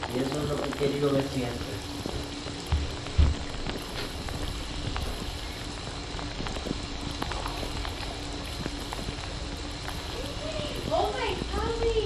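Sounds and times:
faint low hum: 0.0 - 12.0
shower water hissing: 0.0 - 12.0
low thump: 2.7 - 3.5.

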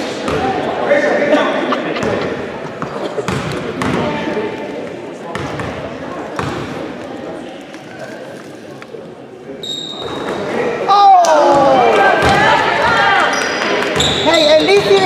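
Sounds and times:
spectators talking: 0.0 - 15.0.

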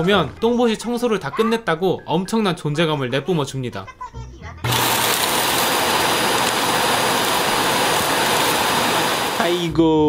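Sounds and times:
vacuum suction with high whine: 4.7 - 9.7.

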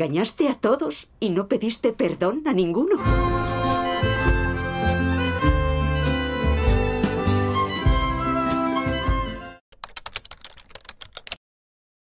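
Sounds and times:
film trailer music: 3.0 - 9.6
keyboard keys clicking: 9.8 - 11.4.

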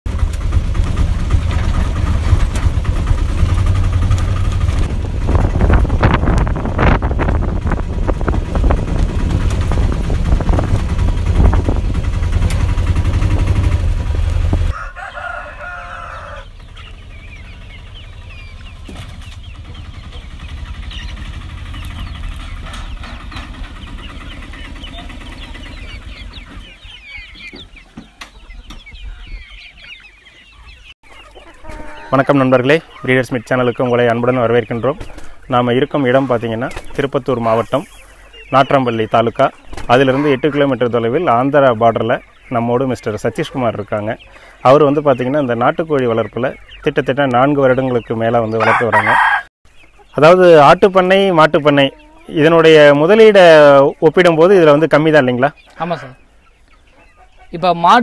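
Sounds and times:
small engine running with rattling: 0.1 - 6.0, 7.4 - 14.7, 19.1 - 26.2
chickens clucking: 0.1 - 58.0
small birds chirping: 0.1 - 58.0
rooster crowing: 14.6 - 16.6, 31.4 - 32.3, 48.5 - 49.5.

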